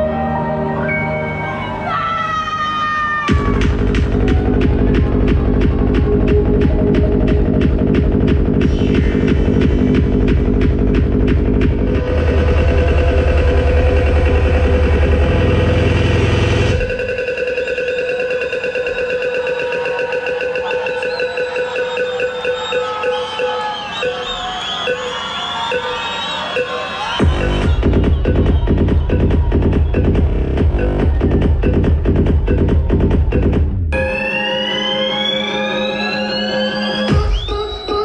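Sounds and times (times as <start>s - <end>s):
heavy bassline: 0.0s - 24.4s, 26.6s - 38.0s
kick drum: 3.3s - 14.4s, 27.2s - 34.0s.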